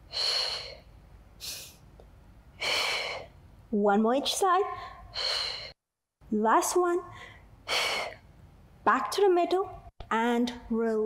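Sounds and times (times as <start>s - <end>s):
woman's forceful breath: 0.0s - 1.8s, 2.6s - 3.4s, 4.8s - 5.8s.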